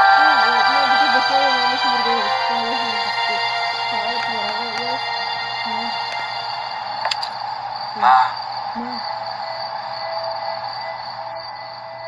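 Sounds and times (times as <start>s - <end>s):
soft music with long held notes: 0.0s - 7.5s.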